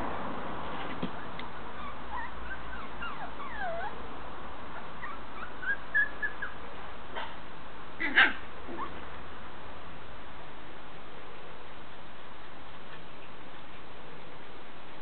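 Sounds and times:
puppies whining and yipping: 1.2s - 4.0s, 4.8s - 6.6s, 8.0s - 9.0s.

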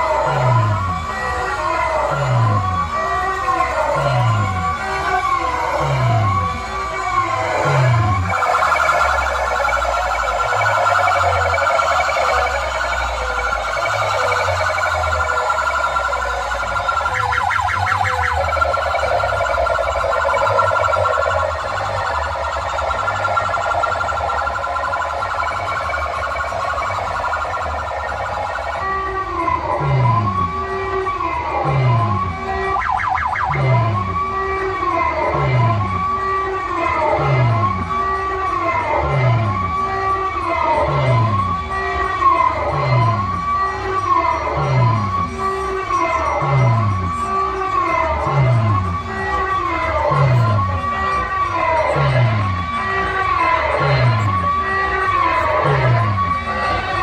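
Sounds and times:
fast-warbling electronic tone: 0.0s - 34.3s, 40.4s - 57.0s
electronic siren wail: 0.0s - 57.0s
dropping bass note: 2.0s - 22.1s, 29.7s - 30.5s, 42.7s - 43.4s.

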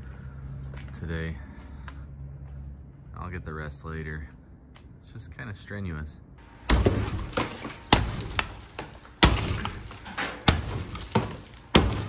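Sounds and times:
falling chunks rattling: 6.6s - 12.0s
hammer striking stucco wall: 6.6s - 12.0s.

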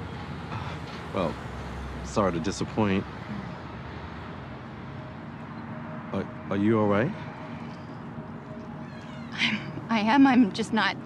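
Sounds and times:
woman asking question: 9.8s - 11.0s.

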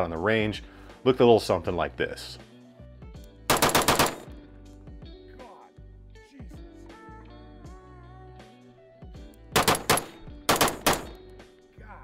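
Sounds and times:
rifle shots in rapid string: 3.5s - 4.4s, 9.6s - 11.2s.

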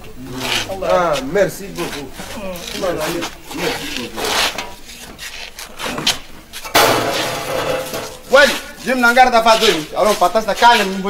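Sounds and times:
chairs scraping and rustling: 0.5s - 10.8s.

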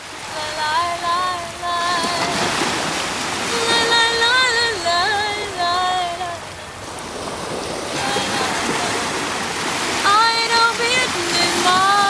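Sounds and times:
woman singing unaccompanied: 0.0s - 6.8s, 7.9s - 12.0s
surf breaking: 0.0s - 12.0s
wind: 0.0s - 12.0s.

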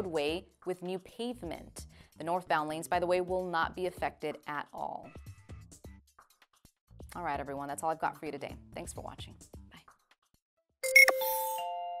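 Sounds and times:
chime tones ringing: 10.8s - 12.0s.

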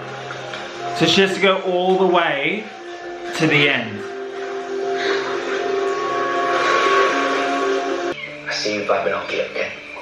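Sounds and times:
higher held tone: 3.9s - 8.4s.

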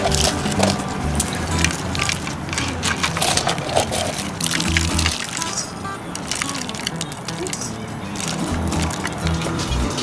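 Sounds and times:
background music: 0.0s - 10.0s
fried fish crackling: 0.0s - 10.0s.

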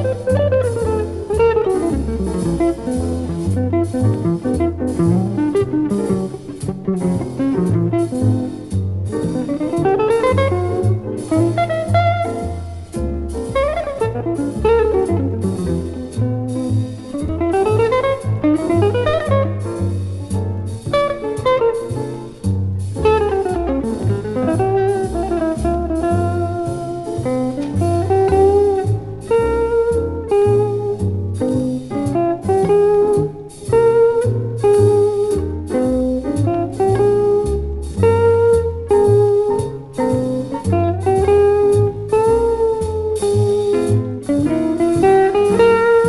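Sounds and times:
double bass line: 0.0s - 46.0s
drums: 0.0s - 46.0s
electric guitar playing blues: 0.0s - 46.0s
piano: 0.0s - 46.0s.

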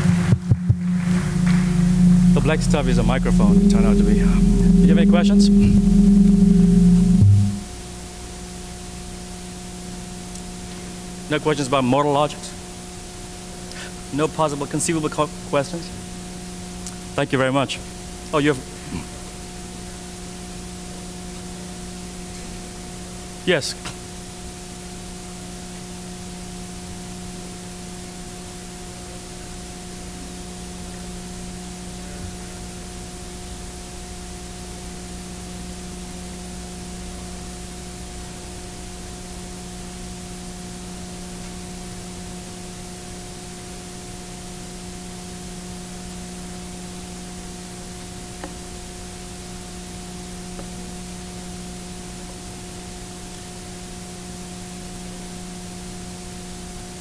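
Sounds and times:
low electrical hum: 0.0s - 57.0s.

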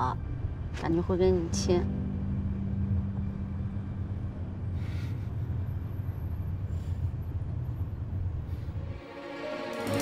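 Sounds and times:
steady low hum: 0.0s - 9.0s.

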